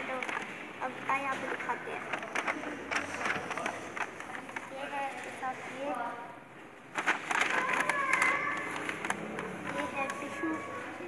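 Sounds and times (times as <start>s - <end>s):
paper bag rustling: 0.0s - 5.5s, 6.9s - 11.0s.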